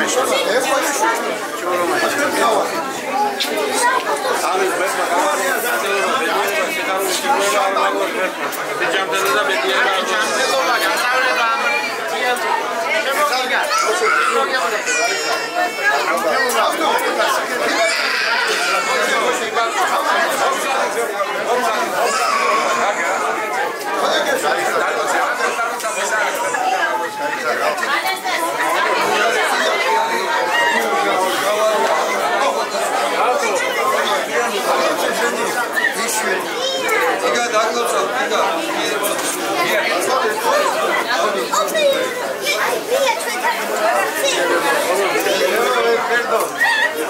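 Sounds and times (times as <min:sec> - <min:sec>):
crowd chatting: 0:00.0 - 0:47.0.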